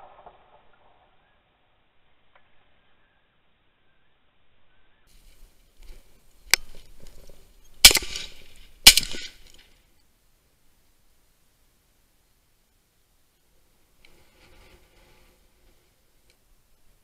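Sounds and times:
rustling: 5.1s - 10.1s, 13.4s - 17.0s
shotgun shots with echo: 7.8s - 9.4s.

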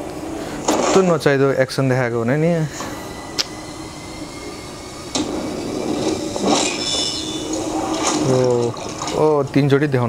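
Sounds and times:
noisy rumble: 0.0s - 10.0s.

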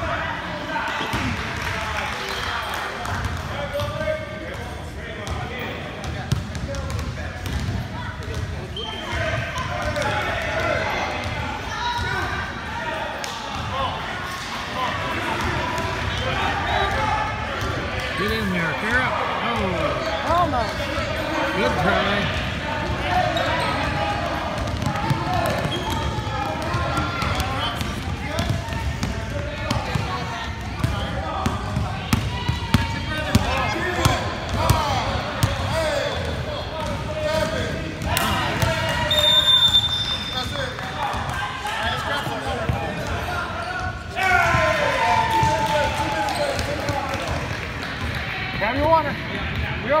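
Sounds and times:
chatter of players and spectators: 0.0s - 50.0s
basketballs bouncing on hardwood: 6.0s - 8.5s, 24.2s - 37.0s
referee's whistle: 8.7s - 9.2s, 39.0s - 40.5s.

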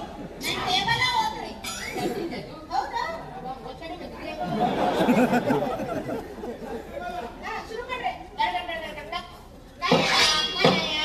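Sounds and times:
chatter of several voices: 0.0s - 11.0s.

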